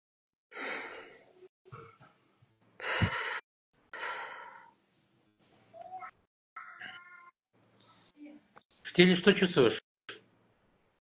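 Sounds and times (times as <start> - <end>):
woman breathing deeply: 2.8 - 4.7.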